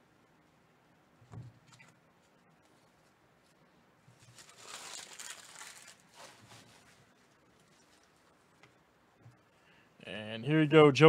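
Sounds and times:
card pack wrapper tearing and crinkling: 4.2s - 6.5s.

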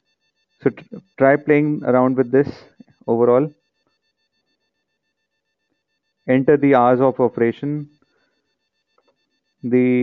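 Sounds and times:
faint high-pitched hum: 0.6s - 3.6s, 6.3s - 7.9s, 9.6s - 10.0s.

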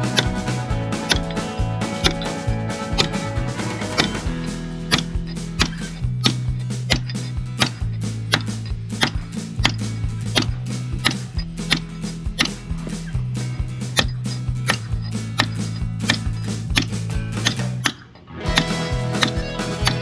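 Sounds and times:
background music low notes: 0.0s - 20.0s
mallet striking caulking iron: 0.0s - 20.0s.

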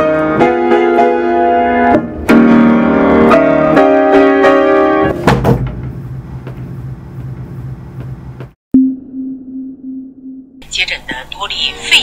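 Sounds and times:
low electronic tone pulsing: 8.7s - 10.6s
low piano note: 8.8s - 10.6s
broadcast voice: 10.6s - 12.0s.

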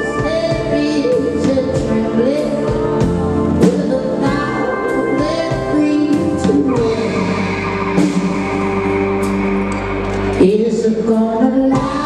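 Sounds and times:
guitar: 0.0s - 12.0s
live rock music: 0.0s - 12.0s
man singing: 3.6s - 7.5s.

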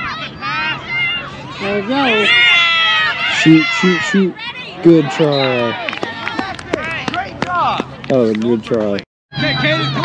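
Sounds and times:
children calling and shouting: 0.0s - 8.1s, 9.3s - 10.0s.

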